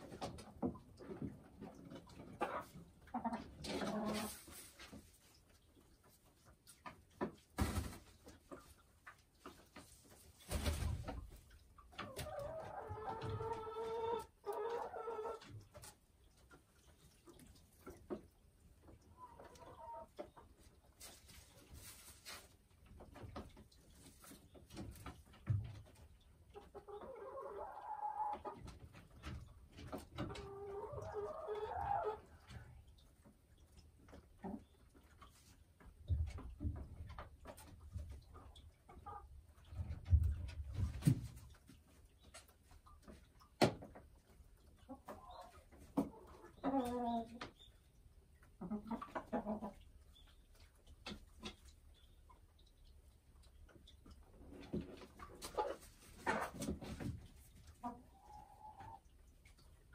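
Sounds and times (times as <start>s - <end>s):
hen clucking: 0.0s - 7.4s, 11.0s - 22.4s, 23.0s - 40.5s, 41.4s - 59.9s.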